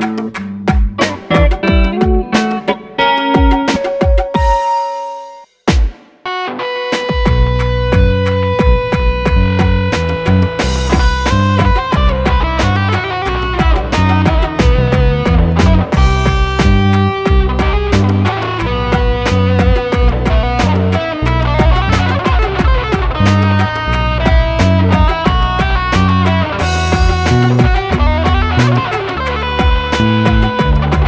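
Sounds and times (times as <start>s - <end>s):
tapped guitar flamenco piece: 0.0s - 31.0s.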